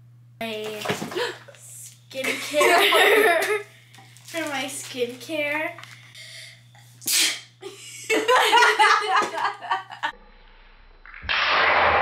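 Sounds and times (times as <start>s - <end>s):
person sneezing: 7.0s - 7.5s.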